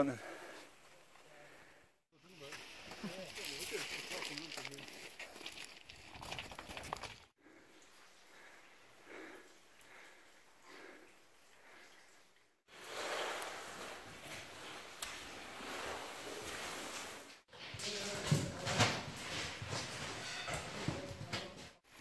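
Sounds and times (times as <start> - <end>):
stones knocking: 3.5 - 7.3.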